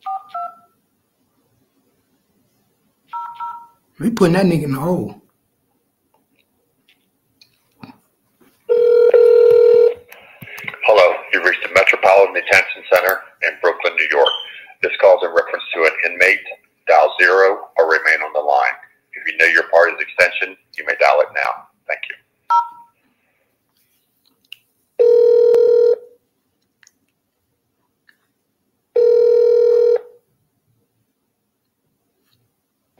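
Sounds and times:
person speaking: 4.0s - 5.3s, 10.1s - 22.2s
telephone line buzzing tone: 8.7s - 10.0s, 25.0s - 26.1s, 29.0s - 30.1s.

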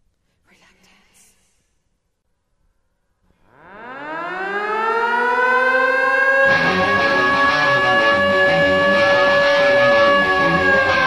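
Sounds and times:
air-raid siren winding up: 3.5s - 11.0s.

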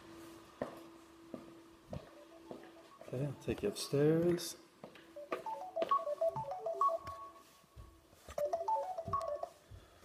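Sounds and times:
footsteps on carpeted stairs: 0.1s - 3.1s, 7.1s - 10.0s
phone ringtone melody: 2.1s - 3.4s, 5.2s - 7.6s, 8.3s - 9.7s.

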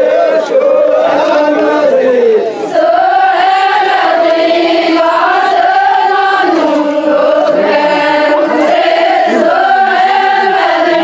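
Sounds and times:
women singing in unison: 2.7s - 11.0s.

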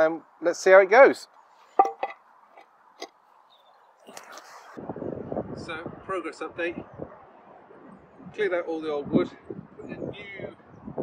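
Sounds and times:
wind buffeting microphone: 4.2s - 11.0s.

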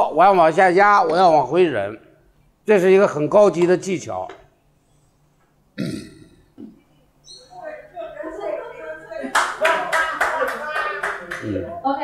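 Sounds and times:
voices: 7.3s - 12.0s
hand clapping in rhythm: 9.3s - 11.6s.

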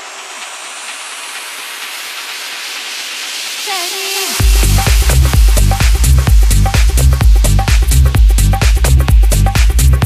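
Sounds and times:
white-noise riser hiss: 0.0s - 8.5s.

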